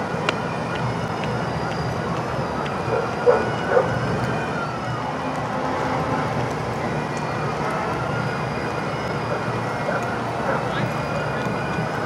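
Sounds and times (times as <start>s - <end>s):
bus engines running: 0.0s - 12.0s
outdoor street hum: 0.0s - 12.0s.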